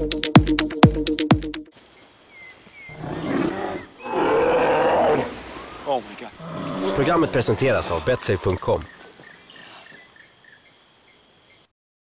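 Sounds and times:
bear roaring: 0:03.0 - 0:05.5, 0:06.4 - 0:08.2.

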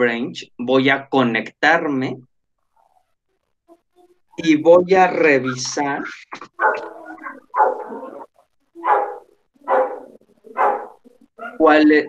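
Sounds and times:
dog barking: 0:06.5 - 0:11.6.

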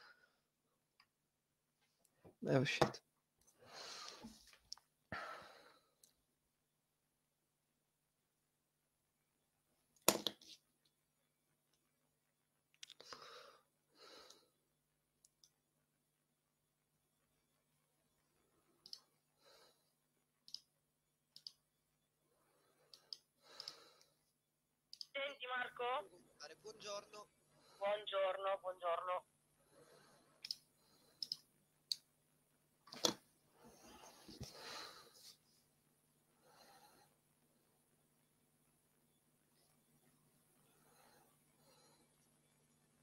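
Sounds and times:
soft breaths: 0:00.0 - 0:00.6, 0:03.4 - 0:06.3, 0:12.8 - 0:14.8, 0:16.8 - 0:20.8, 0:21.4 - 0:24.5, 0:27.3 - 0:28.3, 0:29.5 - 0:31.6, 0:33.3 - 0:43.0
small clicks: 0:21.3 - 0:21.6, 0:31.2 - 0:32.0.

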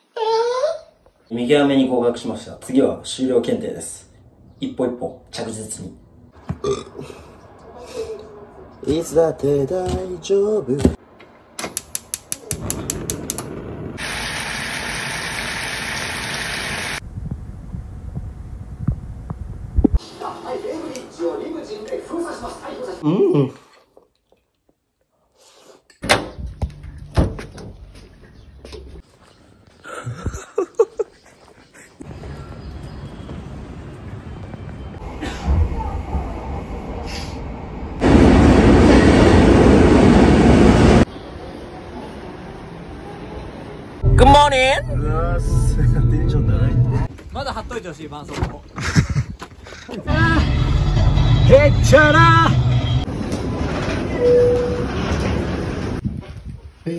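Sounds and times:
gas stove igniter clicking: 0:11.6 - 0:13.5
food sizzling in a wok: 0:14.0 - 0:17.0
station hall noise: 0:35.0 - 0:44.3
low rumble: 0:44.0 - 0:47.1
train wheels rumbling on rails: 0:53.0 - 0:56.0.

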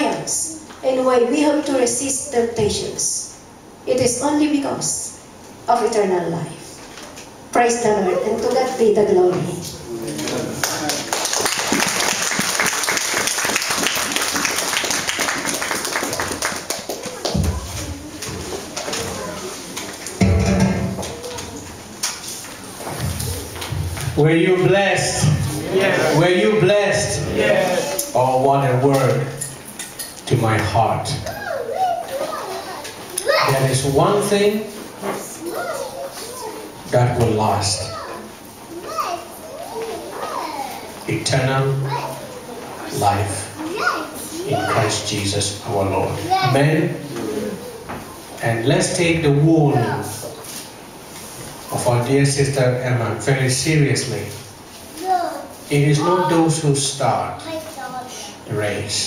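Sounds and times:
congregation clapping: 0:10.2 - 0:17.8
children's voices: 0:16.7 - 0:23.8, 0:27.1 - 0:28.2, 0:31.1 - 0:33.8, 0:35.0 - 0:36.9, 0:37.7 - 0:45.2, 0:45.9 - 0:48.4, 0:49.6 - 0:50.8, 0:54.9 - 0:56.7, 0:57.4 - 0:58.5
man's voice: 0:24.2 - 0:29.3.

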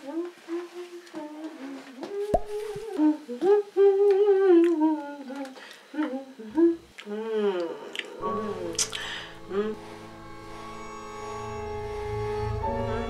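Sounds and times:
person humming a slow tune: 0:00.0 - 0:10.1.

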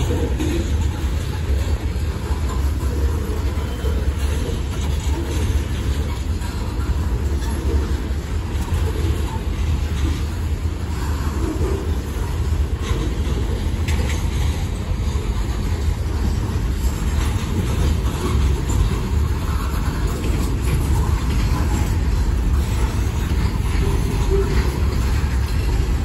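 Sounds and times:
freight train wheels rumbling: 0:00.0 - 0:26.0.

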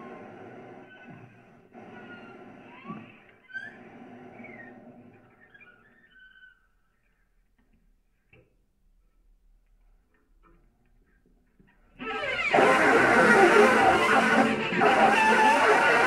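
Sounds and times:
saxophone and cello improvisation: 0:12.0 - 0:16.0
thin sliding squeals: 0:12.0 - 0:16.0.

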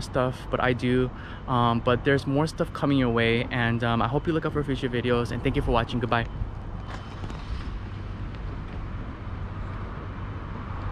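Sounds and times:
low rumble of outdoor noise: 0:00.0 - 0:10.9.

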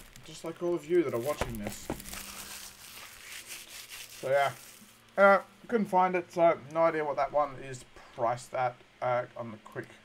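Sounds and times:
crinkling of box wrapping: 0:00.0 - 0:05.2
low electrical hum: 0:00.0 - 0:10.0.

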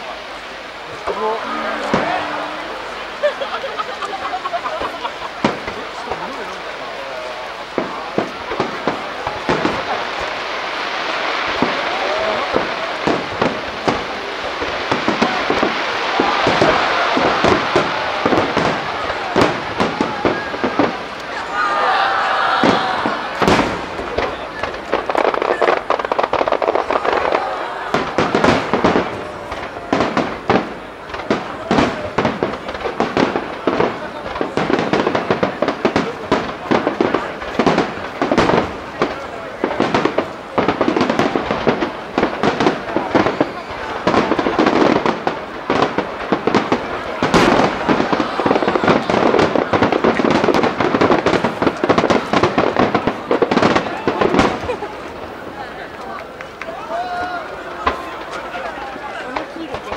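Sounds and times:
firework shells bursting: 0:11.4 - 0:21.4, 0:22.6 - 0:56.7.

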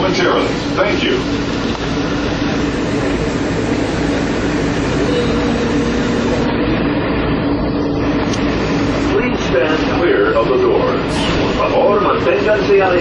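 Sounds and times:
train mechanical hum: 0:00.0 - 0:13.0
faint high tone: 0:05.0 - 0:06.5.

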